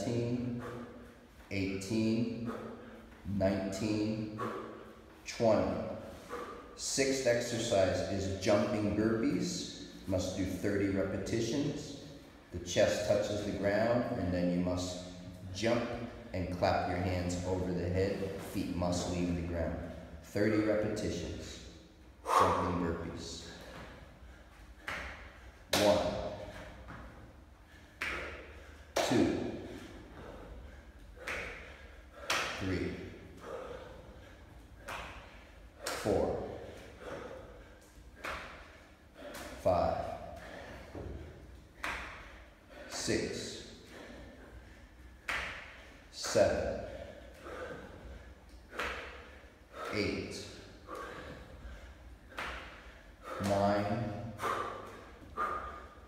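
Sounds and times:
effortful breaths and grunts: 0:00.0 - 0:56.0
hand claps: 0:24.8 - 0:27.0, 0:28.0 - 0:29.5, 0:31.2 - 0:32.6, 0:34.8 - 0:36.3, 0:38.2 - 0:38.6, 0:41.8 - 0:42.3, 0:45.2 - 0:45.8, 0:48.8 - 0:49.2, 0:52.3 - 0:52.8.

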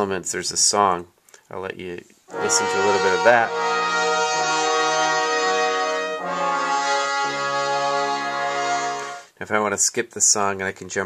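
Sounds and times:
instrumental music with held chords: 0:02.3 - 0:09.3.

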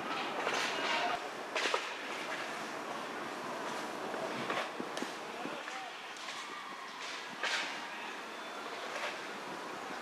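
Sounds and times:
steady background hiss: 0:00.0 - 0:10.0
distant indistinct voices: 0:03.6 - 0:10.0.

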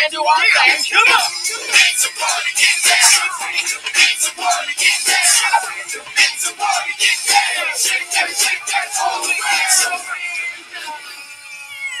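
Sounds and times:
cat-like meow: 0:11.5 - 0:12.0.

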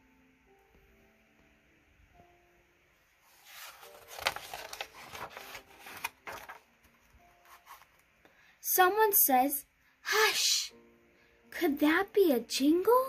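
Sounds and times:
faint background music: 0:00.0 - 0:13.0
book pages turning and rustling: 0:03.2 - 0:08.1.

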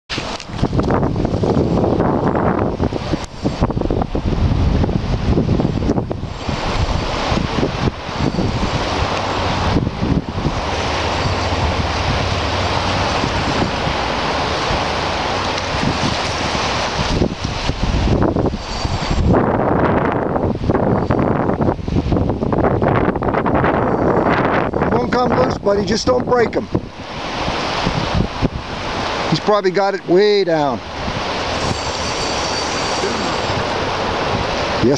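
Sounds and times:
lake waves washing: 0:00.1 - 0:34.9
wind buffeting microphone: 0:00.1 - 0:34.9.

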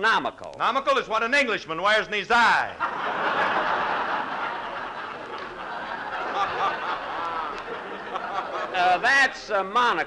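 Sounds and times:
studio audience laughing: 0:02.7 - 0:09.4.

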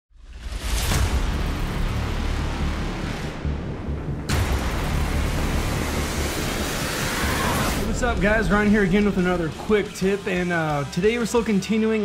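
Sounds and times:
dense rushing noise: 0:00.3 - 0:09.8
sharp hit: 0:00.4 - 0:10.3
rising hiss: 0:05.5 - 0:07.9
deep rumbling booms: 0:07.7 - 0:09.8.

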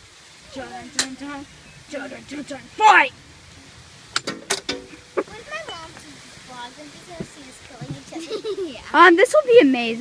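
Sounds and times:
child laughing: 0:08.0 - 0:09.0.

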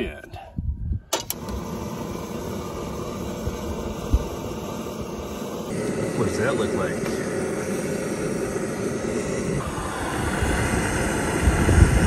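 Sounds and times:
gas burner hissing: 0:01.0 - 0:12.0
stove igniter click: 0:01.1 - 0:01.7.

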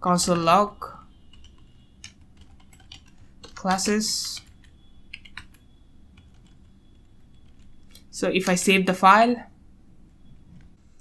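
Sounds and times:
computer keyboard keystrokes: 0:01.3 - 0:05.6, 0:06.2 - 0:06.7, 0:07.3 - 0:08.1.

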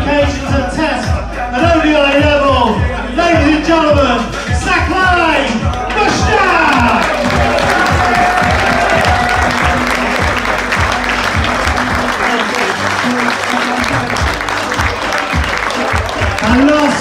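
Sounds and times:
music playing: 0:00.0 - 0:17.0
audience applauding: 0:05.7 - 0:17.0.

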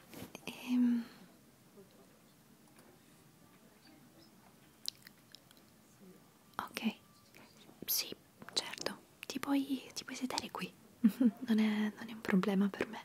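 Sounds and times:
woman whispering: 0:00.3 - 0:01.2, 0:06.5 - 0:10.8, 0:11.5 - 0:13.0.

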